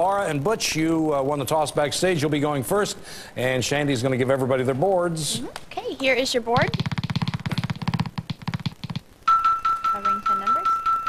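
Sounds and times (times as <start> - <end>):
rapid electronic blips: 6.6 - 9.3.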